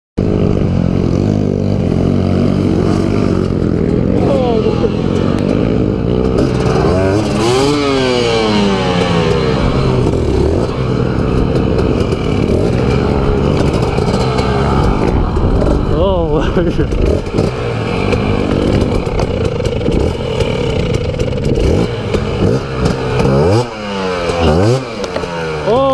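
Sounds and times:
dirt bike engine revving: 0.2s - 25.9s.

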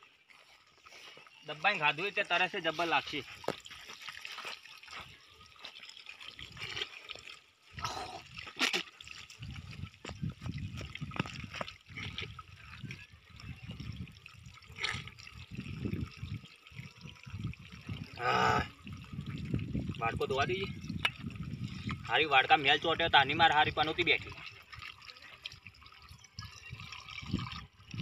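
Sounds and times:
water trickling into bottle: 0.0s - 28.0s.

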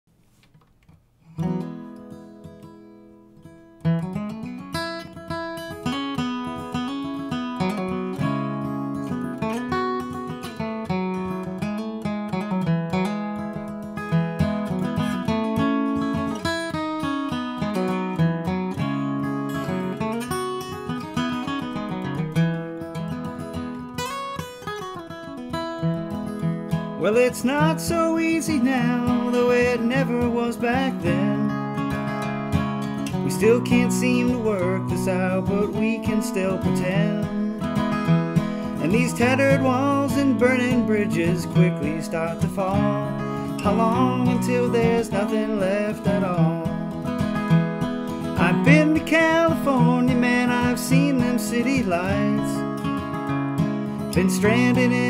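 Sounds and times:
acoustic guitar strumming: 0.3s - 55.0s.

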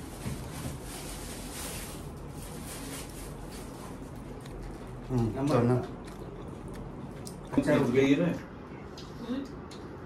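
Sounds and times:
people eating by hand: 0.1s - 10.0s.

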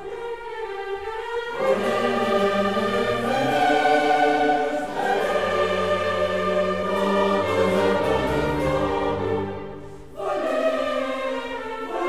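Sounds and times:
chorus singing: 0.0s - 12.0s
orchestra strings: 0.0s - 12.0s.

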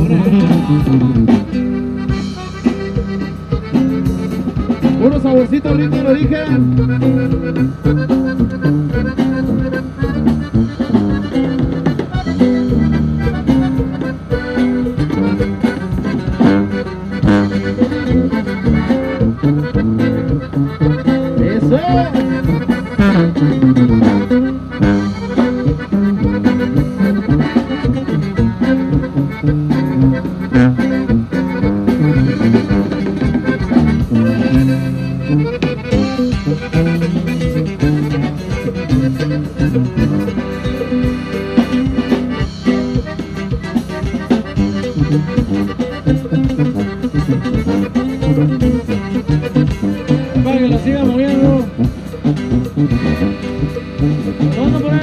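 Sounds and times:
accordion banda music with brass: 0.0s - 55.0s.

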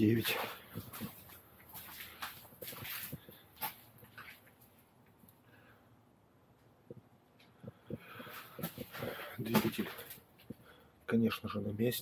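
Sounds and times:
faint footsteps: 0.0s - 5.4s, 6.8s - 10.8s.

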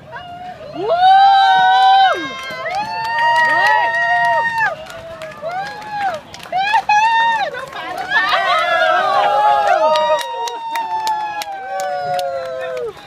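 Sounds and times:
people shouting and whooping: 0.0s - 13.0s.

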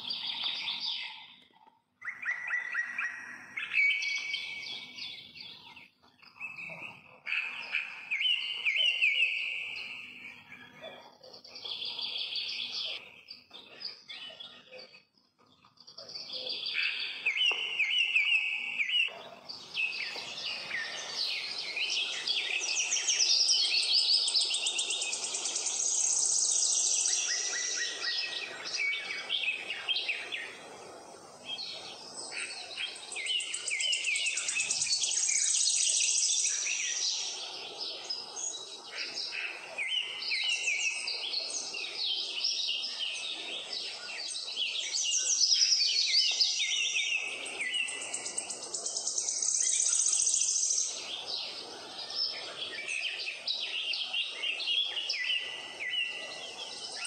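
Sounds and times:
birds chirping and singing: 0.0s - 57.0s.

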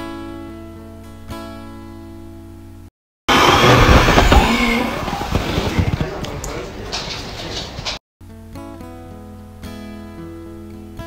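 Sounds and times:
air hitting microphone: 3.3s - 8.0s
voices: 3.4s - 8.0s.

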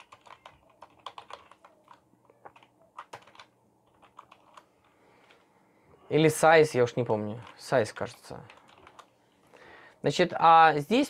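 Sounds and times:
typing on computer keyboard: 0.0s - 5.4s, 7.2s - 9.1s.

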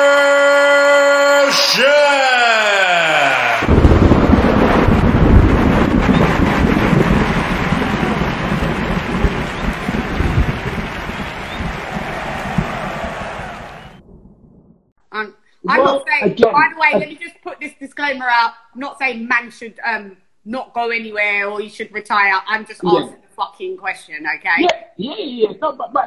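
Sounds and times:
thunder rumble with crackling hiss: 3.6s - 14.8s.

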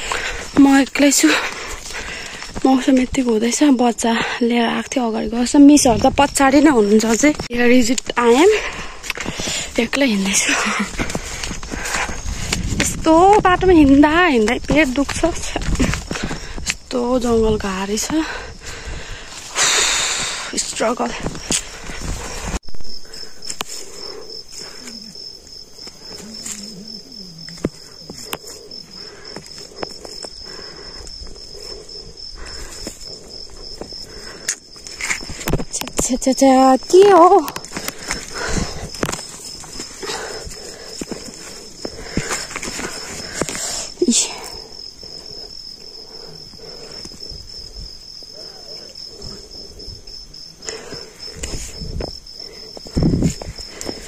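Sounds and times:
insects chirring: 0.0s - 54.0s
footsteps: 4.2s - 45.8s.

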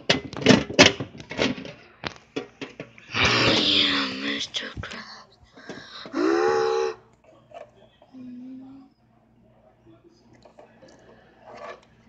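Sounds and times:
person wailing: 6.1s - 7.0s.

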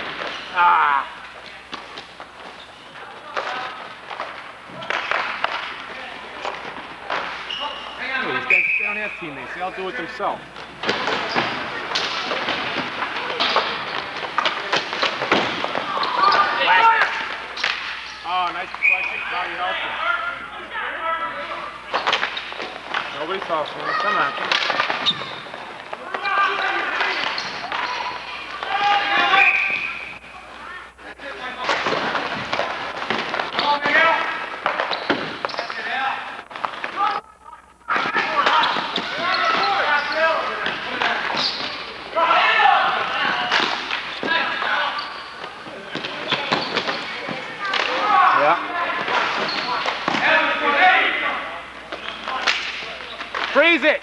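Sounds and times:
players shouting and chattering: 0.0s - 54.0s.

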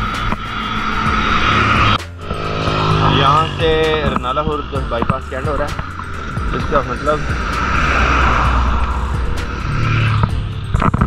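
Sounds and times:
vehicle passing on wet road: 0.0s - 11.0s.

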